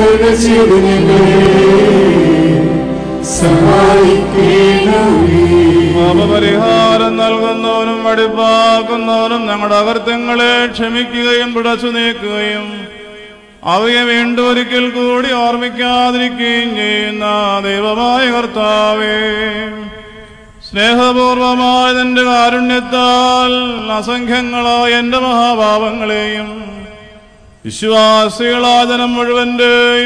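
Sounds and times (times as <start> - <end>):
person chanting: 0.0 - 27.0.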